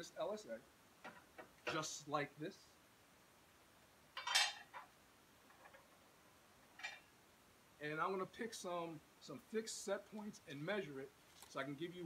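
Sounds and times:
small handling noises: 10.0s - 12.0s.

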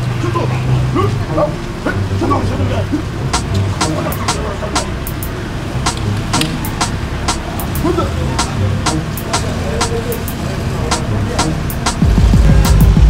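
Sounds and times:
film music score: 0.7s - 13.0s
loud low surge: 10.8s - 13.0s.

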